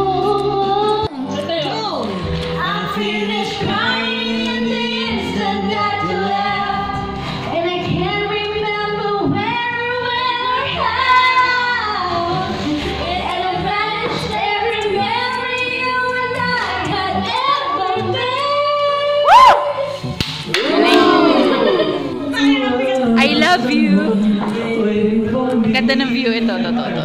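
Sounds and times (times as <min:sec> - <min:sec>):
woman singing into a microphone: 0:00.0 - 0:19.9, 0:22.1 - 0:27.0
karaoke backing track: 0:00.0 - 0:27.0.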